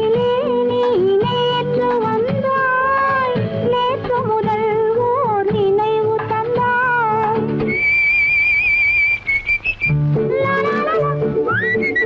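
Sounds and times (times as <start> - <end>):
whistled melody: 7.6 - 10.0, 10.8 - 12.0.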